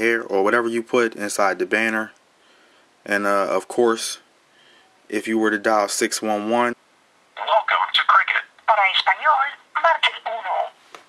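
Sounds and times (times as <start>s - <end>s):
recorded voice over speakerphone: 7.4s - 10.8s.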